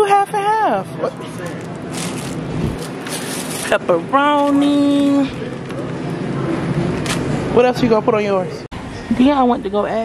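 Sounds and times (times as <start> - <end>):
supermarket background noise: 0.0 - 10.0
crinkling handling noises: 1.2 - 3.8.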